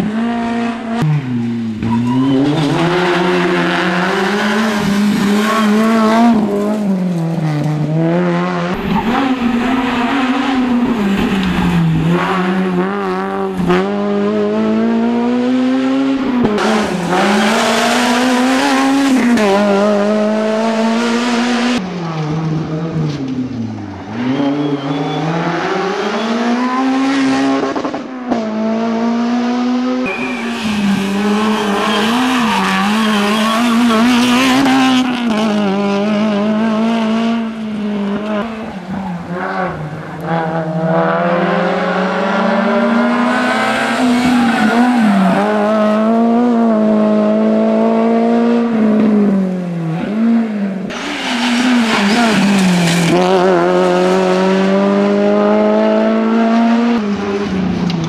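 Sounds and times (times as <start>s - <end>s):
rally car engine at high revs: 0.0s - 58.0s.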